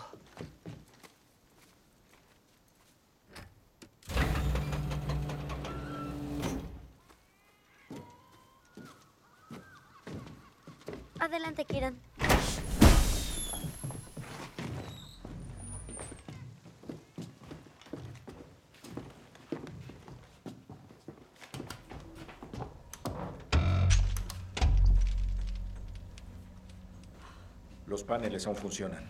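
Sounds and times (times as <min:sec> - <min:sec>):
footsteps: 0:07.0 - 0:29.0
low film score: 0:22.0 - 0:29.0.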